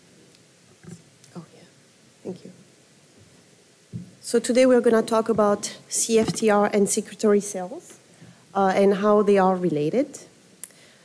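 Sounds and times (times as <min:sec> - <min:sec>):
people talking: 0:02.3 - 0:02.6, 0:04.2 - 0:08.0, 0:08.6 - 0:10.3.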